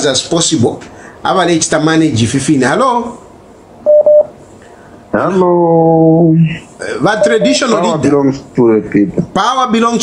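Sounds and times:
telephone line beeps: 0:03.9 - 0:04.3, 0:07.2 - 0:07.8.

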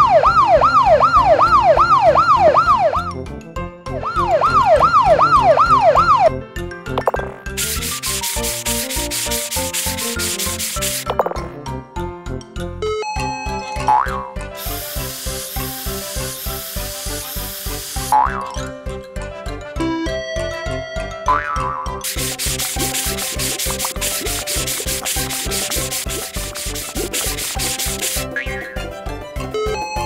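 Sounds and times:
spray bottle hissing: 0:07.5 - 0:11.3, 0:14.6 - 0:18.3, 0:22.0 - 0:28.6
sponge scrubbing: 0:07.6 - 0:11.1, 0:22.0 - 0:28.4.

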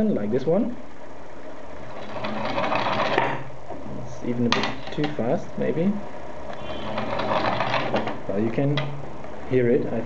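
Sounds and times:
metal rod rolling on glass: 0:01.9 - 0:03.2.

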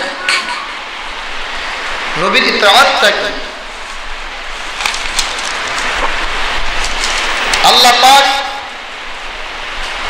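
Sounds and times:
steady loud hiss: 0:00.0 - 0:10.0.

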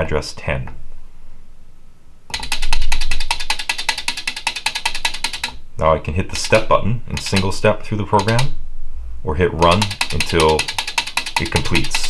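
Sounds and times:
relays clicking rapidly: 0:02.3 - 0:05.6, 0:06.4 - 0:07.6, 0:08.2 - 0:08.6, 0:09.6 - 0:12.0.

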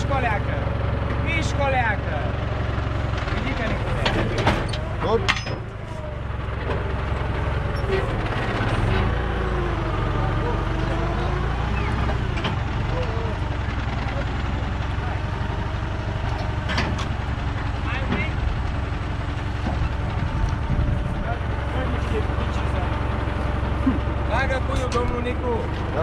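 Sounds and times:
diesel engine idling: 0:00.0 - 0:26.0.

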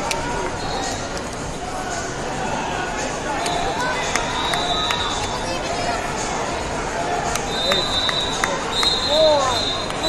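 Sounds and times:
many voices chattering: 0:00.0 - 0:10.0.

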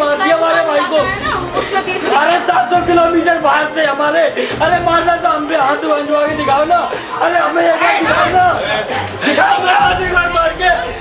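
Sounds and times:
other voices talking: 0:00.0 - 0:11.0
man arguing in raised voice: 0:02.2 - 0:11.0.

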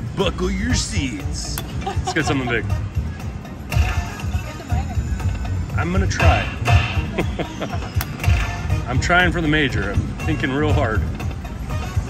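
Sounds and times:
electronic game music: 0:01.0 - 0:10.4.

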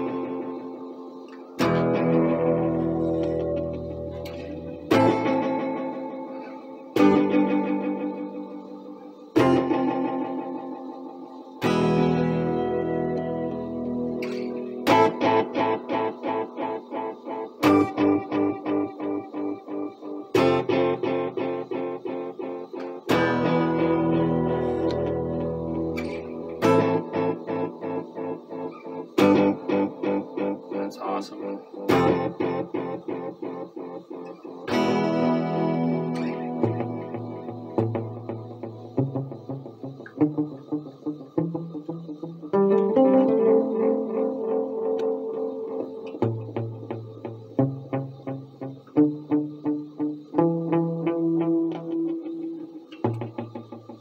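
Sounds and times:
guitar strummed chords with echo: 0:00.0 - 0:54.0.

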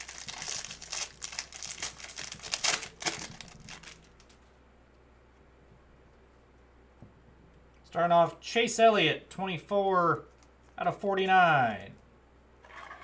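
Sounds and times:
foil wrapper crinkling: 0:00.0 - 0:04.4.

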